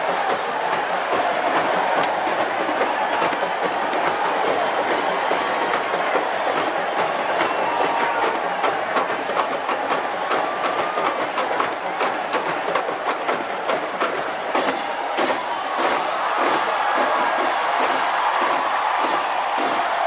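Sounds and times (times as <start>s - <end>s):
rapid marching drum hits: 0.0s - 20.0s
stadium crowd noise: 0.0s - 20.0s.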